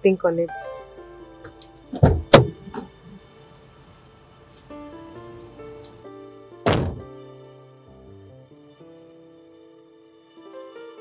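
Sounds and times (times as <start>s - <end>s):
soft background music: 0.0s - 11.0s
car door shutting: 1.4s - 3.0s, 6.6s - 7.2s.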